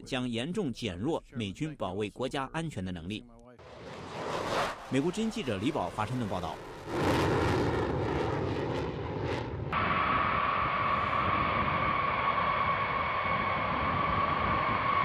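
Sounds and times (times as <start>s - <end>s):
jet afterburner roaring: 3.6s - 15.0s
jet engines whining: 3.6s - 15.0s
low rumble: 3.6s - 15.0s.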